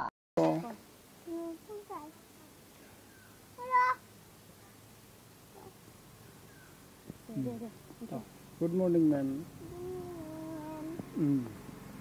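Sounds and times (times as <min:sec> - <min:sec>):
child's high-pitched call: 0:03.6 - 0:04.0.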